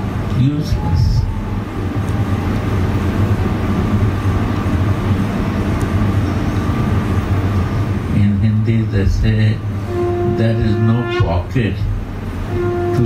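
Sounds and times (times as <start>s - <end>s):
low rumble with hum: 0.0s - 13.0s.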